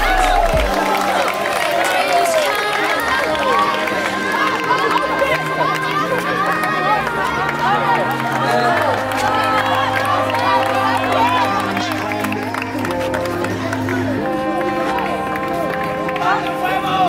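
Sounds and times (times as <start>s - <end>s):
background music with bass line: 0.0s - 1.0s
children shouting: 0.0s - 12.1s.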